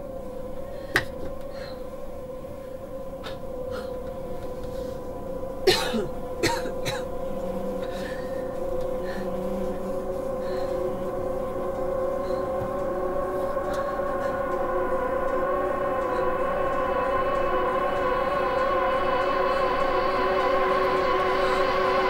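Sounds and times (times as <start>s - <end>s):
tense film score drone: 0.0s - 22.0s.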